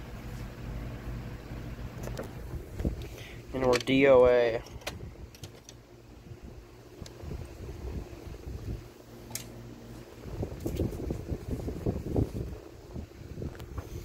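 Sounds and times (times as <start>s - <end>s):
handling rumbling and rustling: 1.8s - 14.0s.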